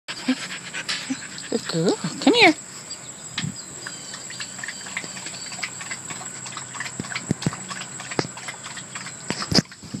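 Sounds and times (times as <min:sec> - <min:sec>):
faint chirps: 0:01.0 - 0:06.9.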